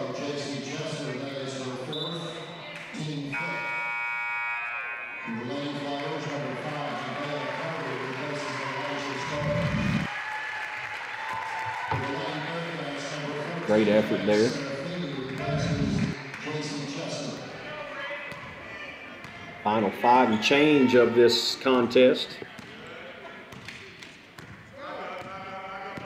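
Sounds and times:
crowd hubbub: 1.1s - 10.4s
referee's whistle: 1.9s - 5.8s
scoreboard horn: 3.3s - 5.8s.

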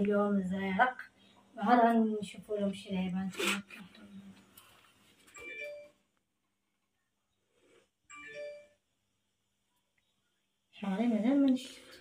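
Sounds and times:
woman talking: 0.0s - 4.3s, 10.8s - 12.0s.

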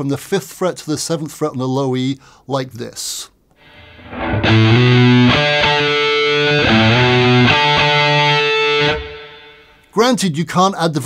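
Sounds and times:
distorted electric guitar slides: 3.6s - 9.8s.

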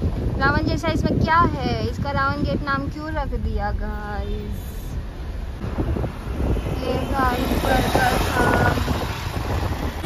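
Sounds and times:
car road noise rumble: 0.0s - 10.0s
wind rushing over microphone: 0.0s - 10.0s.

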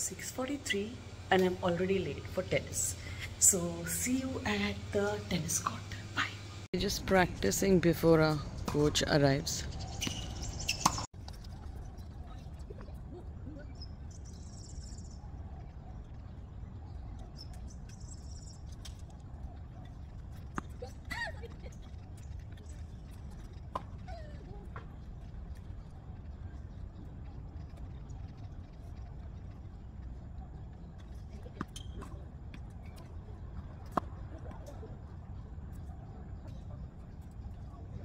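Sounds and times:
steady low rumble: 0.0s - 38.0s.

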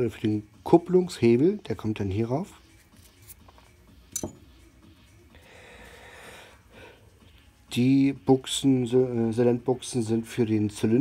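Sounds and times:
metal parts clicking together: 4.1s - 4.4s.

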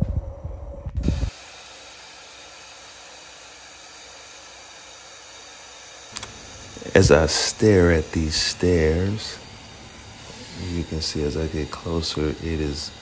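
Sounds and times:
steady hiss: 1.0s - 13.0s.

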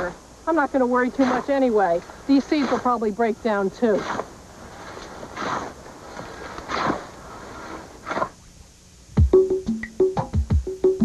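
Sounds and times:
tool swishing through weeds: 2.4s - 3.0s, 3.8s - 8.4s
music jingle with knocking percussion: 9.2s - 11.0s.

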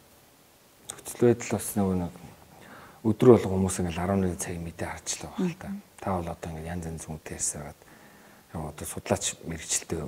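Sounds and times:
person talking: 5.2s - 5.8s.

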